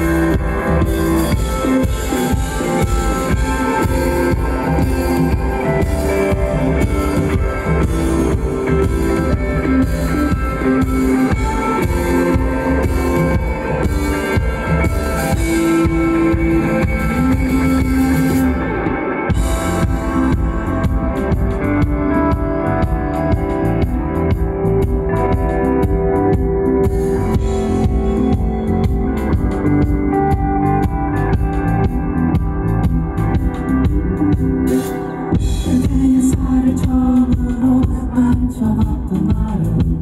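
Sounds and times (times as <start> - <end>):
drum kit: 0.0 - 40.0
electric guitars: 0.0 - 40.0.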